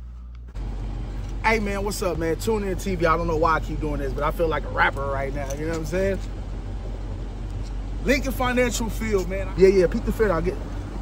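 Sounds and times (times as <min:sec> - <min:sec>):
city traffic rumble: 0:00.0 - 0:11.0
man speaking: 0:01.4 - 0:06.3, 0:08.0 - 0:10.7.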